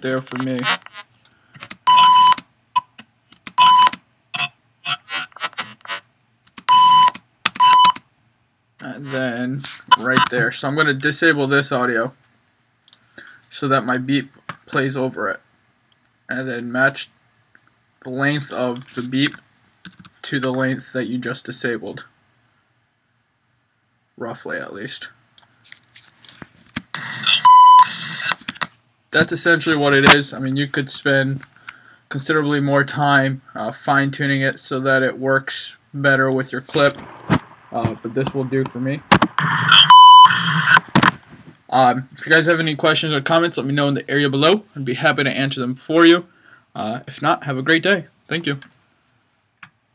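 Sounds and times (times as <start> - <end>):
noisy video clip audio: 0.0 - 49.9
choppy audio snippets: 34.9 - 43.6
censor bleep tone: 39.4 - 40.8.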